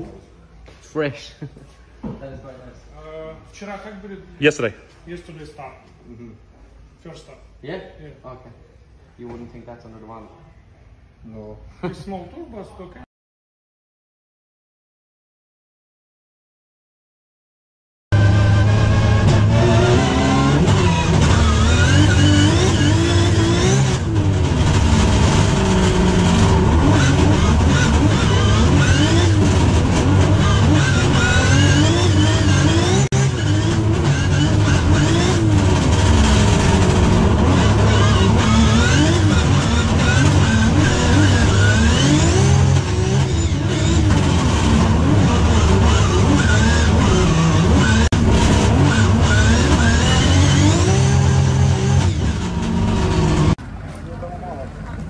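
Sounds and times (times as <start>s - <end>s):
car engine revving: 18.1s - 53.6s.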